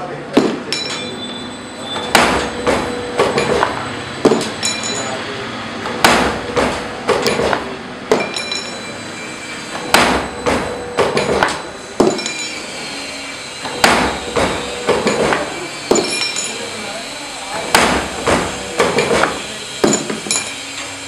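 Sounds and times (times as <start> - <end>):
sharp metallic clanks: 0.4 - 5.2, 5.9 - 13.0, 13.6 - 16.9, 17.6 - 21.0
machine running: 0.4 - 21.0.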